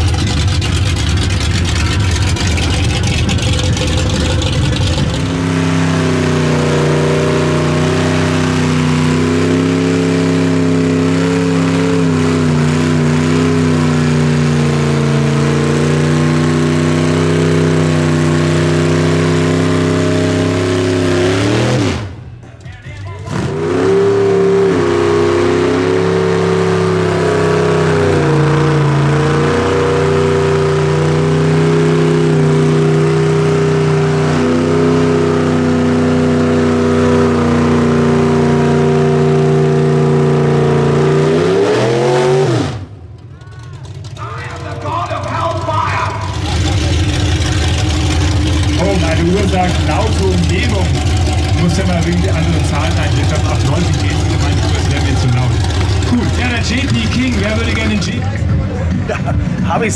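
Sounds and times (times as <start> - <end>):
car engine revving high: 0.0 - 22.2, 23.3 - 43.0, 44.1 - 59.9.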